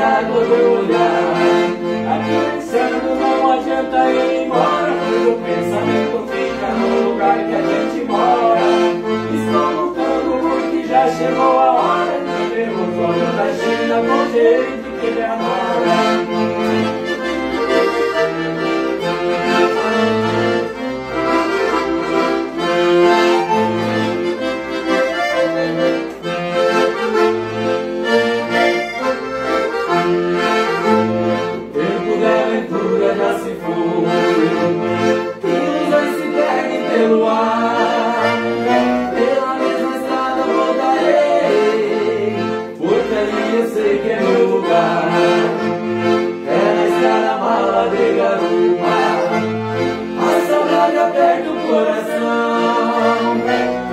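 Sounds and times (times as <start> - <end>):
accordions playing: 0.0 - 53.9.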